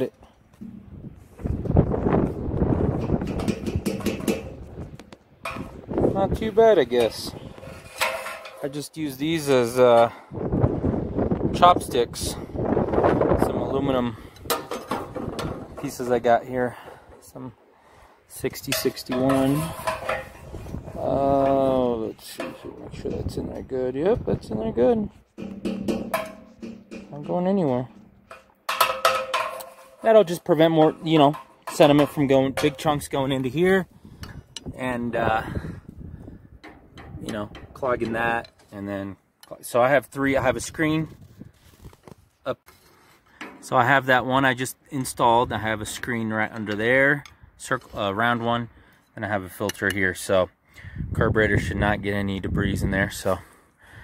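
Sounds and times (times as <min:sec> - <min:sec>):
metal rod knocking in tank: 0:03.0 - 0:04.6, 0:25.4 - 0:27.3
ringing tone from metal tank: 0:25.4 - 0:30.0.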